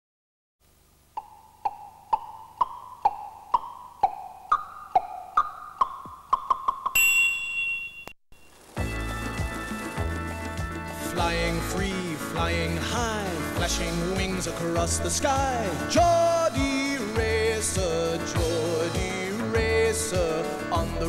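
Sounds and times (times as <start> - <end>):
chiming bell-like notes: 7.0 - 8.6
high held chime: 7.0 - 8.6
full band theme music: 8.8 - 21.0.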